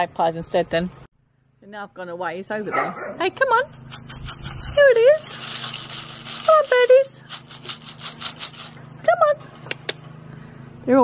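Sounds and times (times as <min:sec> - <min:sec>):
bird seed rattling: 0:03.7 - 0:08.9.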